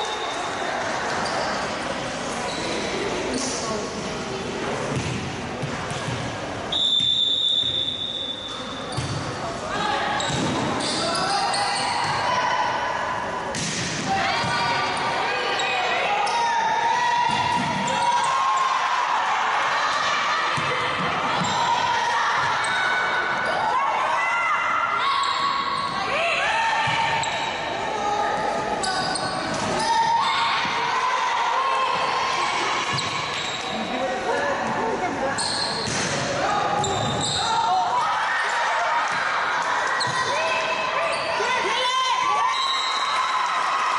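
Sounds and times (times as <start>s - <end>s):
sneakers squeaking on court: 0.2s - 3.0s, 6.9s - 9.5s, 10.2s - 12.3s, 28.4s - 30.5s, 32.9s - 33.9s, 35.4s - 37.5s, 40.0s - 40.4s
referee's whistle: 6.7s - 8.6s, 42.5s - 43.2s.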